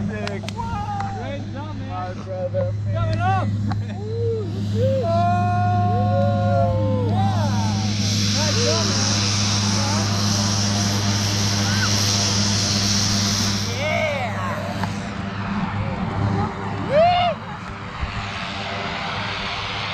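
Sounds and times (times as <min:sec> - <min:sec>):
aircraft engine drone: 0:00.0 - 0:19.9
broad rushing hiss: 0:06.9 - 0:19.9.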